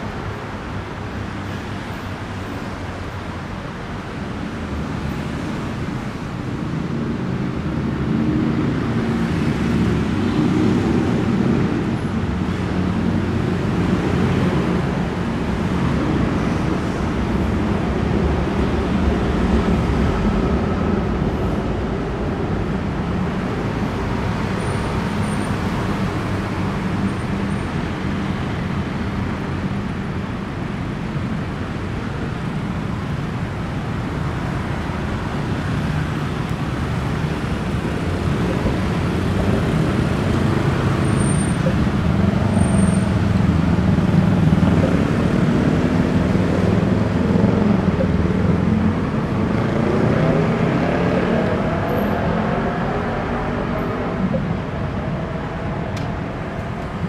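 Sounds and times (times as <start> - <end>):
city road traffic: 0.0 - 57.0.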